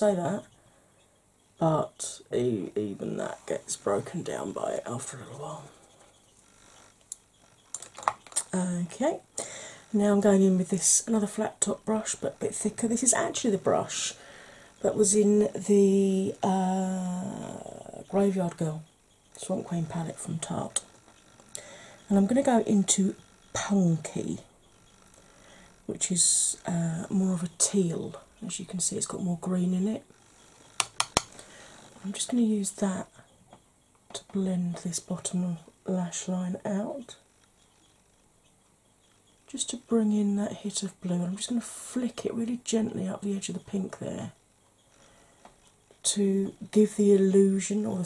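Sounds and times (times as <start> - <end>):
small sharp clicks: 30.5 - 31.5.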